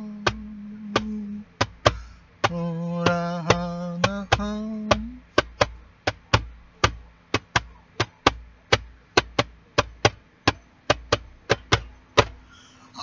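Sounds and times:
sharp taps: 0.0 - 12.5
faint steady hum: 0.0 - 13.0.

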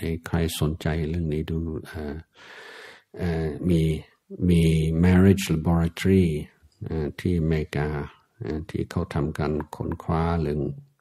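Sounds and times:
man talking: 0.0 - 2.4, 3.1 - 11.0.

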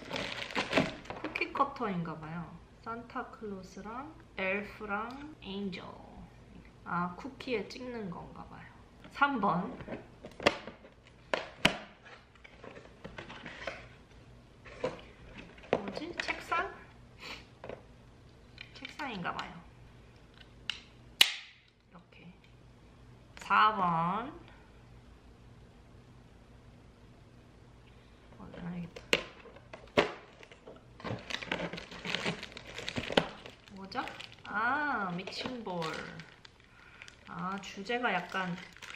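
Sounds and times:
plastic bag crinkling: 0.0 - 1.4, 29.0 - 38.9
cardboard and plastic rustling: 0.0 - 1.5, 9.6 - 16.6, 28.5 - 38.9.

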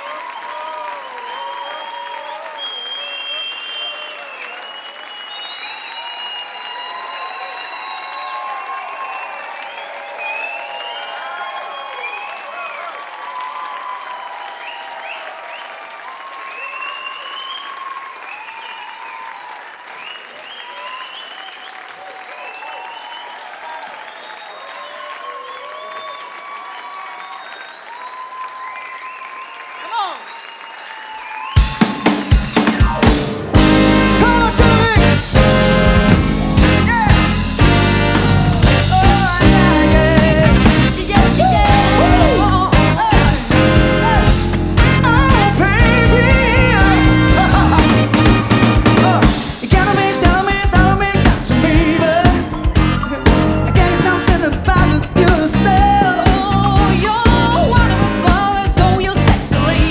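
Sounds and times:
audience applauding: 0.0 - 59.9
crowd cheering: 0.0 - 59.9.

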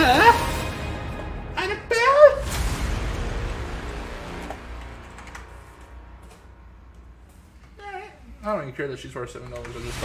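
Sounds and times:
music: 0.0 - 7.8.

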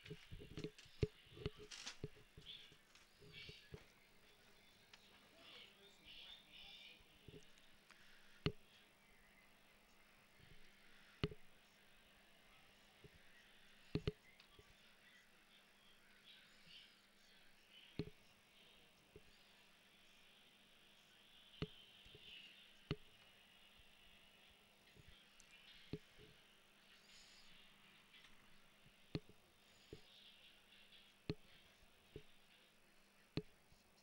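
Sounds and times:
faint background hiss: 0.0 - 34.0.

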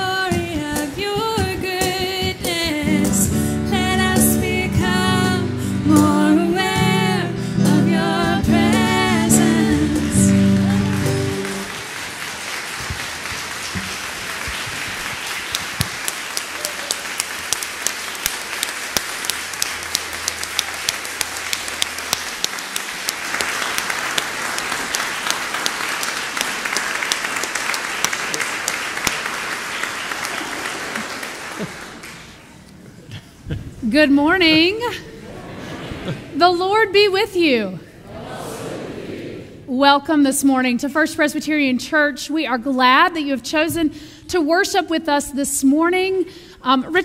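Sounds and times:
song with instrumental accompaniment: 0.1 - 11.7
congregation applauding: 9.0 - 32.6.

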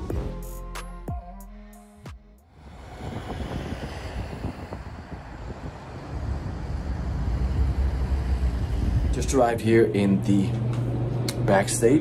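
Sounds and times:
wind: 2.4 - 12.0
traffic rumble: 2.5 - 12.0.

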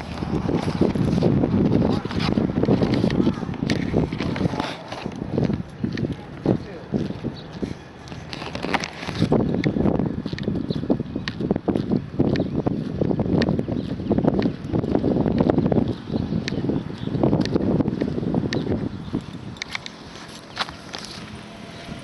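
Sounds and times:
wind buffeting microphone: 0.0 - 22.0.

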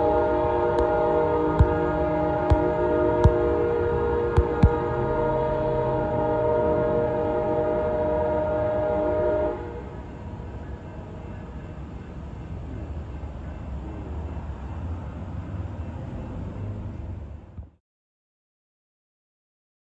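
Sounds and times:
train horn chord: 0.0 - 10.6
diesel train rumbling: 0.0 - 17.8.

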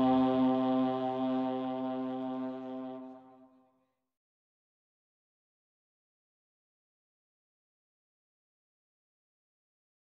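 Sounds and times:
wind instrument long note: 0.0 - 3.6.

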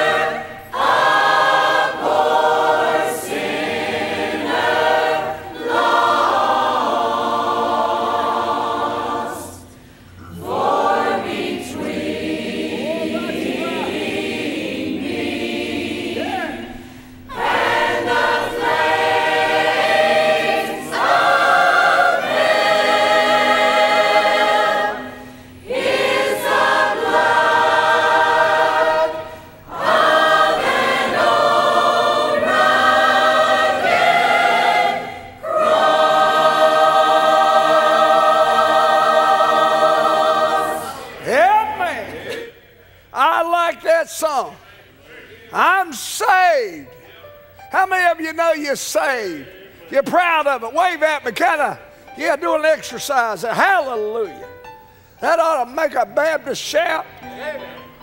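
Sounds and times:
choir singing: 0.0 - 47.2.

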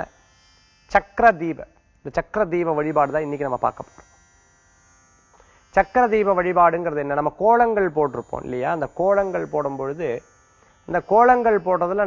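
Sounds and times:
faint electrical buzz: 0.0 - 12.0
man speaking: 1.0 - 4.0, 5.8 - 10.2, 10.9 - 12.0.

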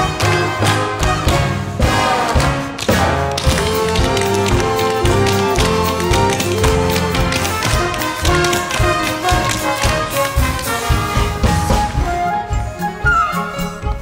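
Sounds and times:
tap shoes on stage floor: 0.0 - 12.2
accompanying music: 0.0 - 14.0.

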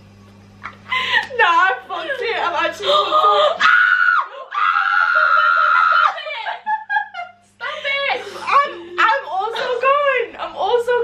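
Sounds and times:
woman screaming playfully: 2.8 - 7.1.

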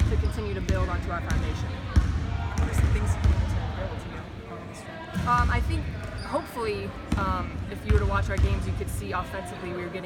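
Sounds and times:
basketballs bouncing on hardwood: 7.1 - 8.7.

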